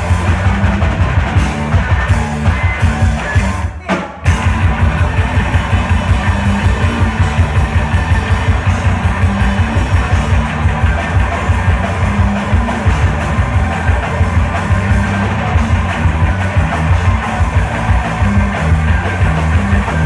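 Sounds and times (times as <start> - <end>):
distorted electric guitars: 0.0 - 20.0
rapid drum hits: 0.0 - 20.0.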